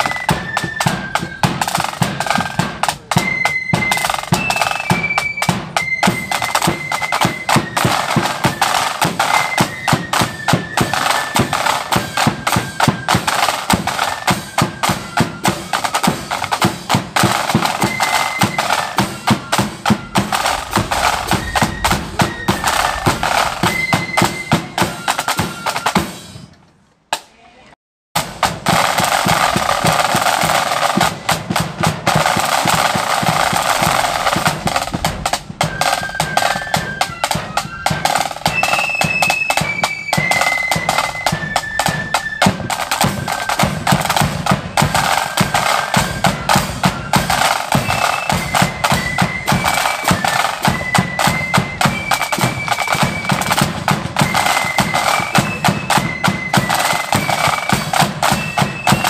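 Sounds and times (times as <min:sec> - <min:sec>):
side drums rolling beat: 0:00.0 - 0:26.4, 0:28.2 - 0:59.0
flutes playing high tune: 0:00.0 - 0:26.5, 0:28.7 - 0:59.0.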